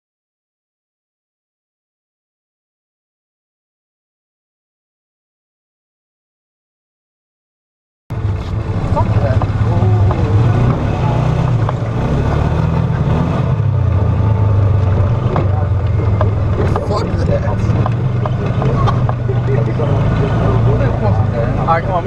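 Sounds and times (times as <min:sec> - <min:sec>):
off-road vehicle engine: 0:08.1 - 0:22.0
knocks from rough ride: 0:08.2 - 0:21.0.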